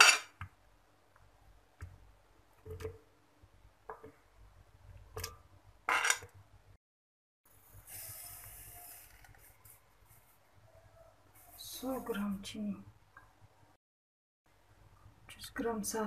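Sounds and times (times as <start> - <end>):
sugar pouring with hiss: 7.7 - 9.8.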